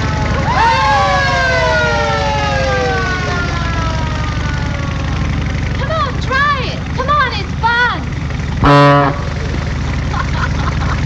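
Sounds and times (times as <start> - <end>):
motorcycle engines running: 0.0 - 11.0
flat horn blast: 8.6 - 9.4.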